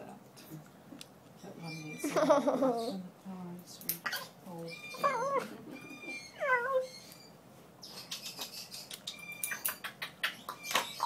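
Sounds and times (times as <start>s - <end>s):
parrot squawking: 4.0s - 7.3s.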